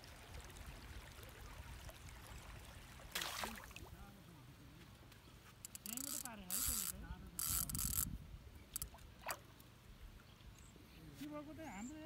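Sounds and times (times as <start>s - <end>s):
fishing reel whirring: 5.7s - 8.1s.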